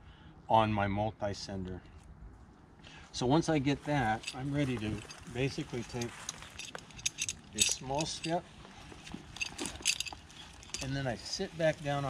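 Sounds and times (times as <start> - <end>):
metal climbing hardware clinking: 3.9 - 11.1.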